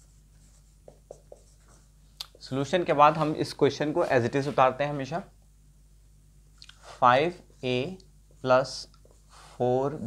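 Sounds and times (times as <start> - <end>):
marker pen writing on whiteboard: 0.0 - 2.1.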